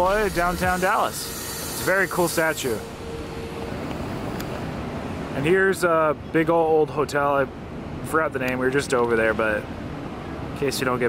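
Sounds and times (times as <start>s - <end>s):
air movement: 0.0s - 5.5s
distant traffic: 0.0s - 11.0s.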